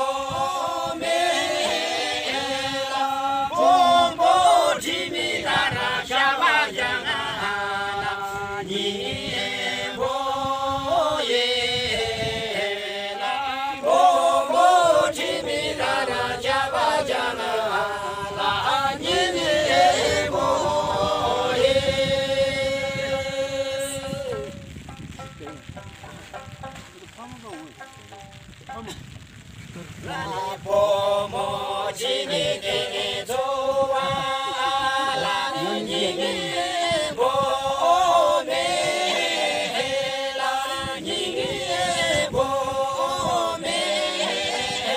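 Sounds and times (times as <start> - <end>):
group singing in unison: 0.0 - 24.7, 30.0 - 44.9.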